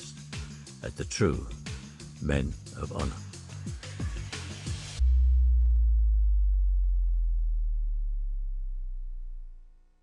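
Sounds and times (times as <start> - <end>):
deep bass tone: 5.0 - 10.0.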